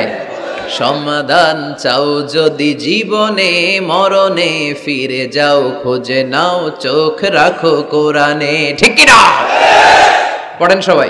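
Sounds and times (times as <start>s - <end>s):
man chanting: 0.0s - 9.4s
crowd shouting: 9.0s - 10.5s.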